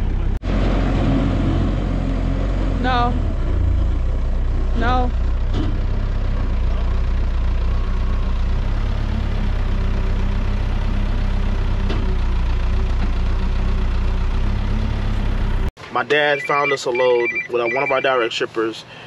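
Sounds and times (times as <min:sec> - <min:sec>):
diesel engine idling: 0:02.8 - 0:15.7.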